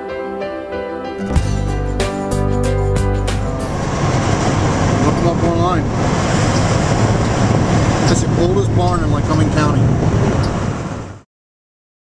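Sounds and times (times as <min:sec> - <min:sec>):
road and engine rumble in car: 0:03.3 - 0:11.2.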